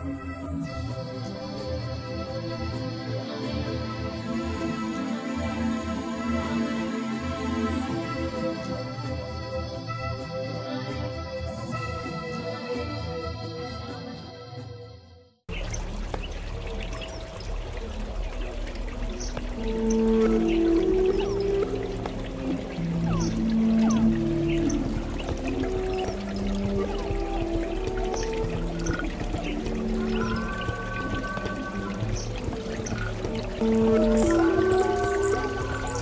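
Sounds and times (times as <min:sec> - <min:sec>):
held low notes: 0:15.5 - 0:36.0
water trickling: 0:15.5 - 0:36.0.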